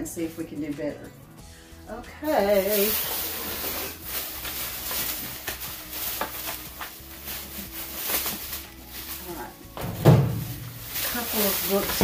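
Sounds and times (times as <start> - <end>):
plastic bag rustling: 2.2 - 12.0.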